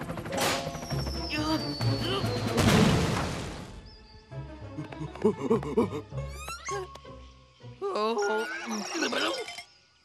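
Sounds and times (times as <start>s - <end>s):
cartoon background music: 0.3s - 3.2s, 3.8s - 9.5s.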